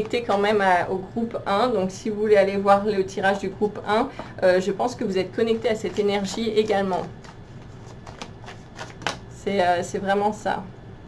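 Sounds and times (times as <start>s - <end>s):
cards being shuffled: 5.4s - 9.2s.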